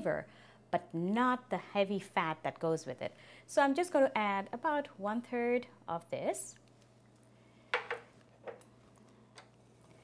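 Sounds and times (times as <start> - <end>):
cookware knocks: 7.8 - 8.1.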